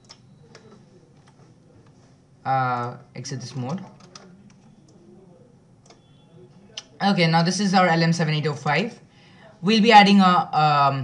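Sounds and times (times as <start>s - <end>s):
computer mouse clicks: 0.0s - 1.4s, 3.7s - 5.0s
low room noise: 0.0s - 11.0s.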